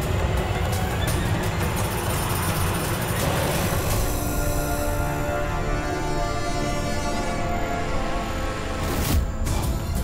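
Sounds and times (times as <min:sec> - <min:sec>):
tense sustained orchestral chord: 0:01.6 - 0:09.5.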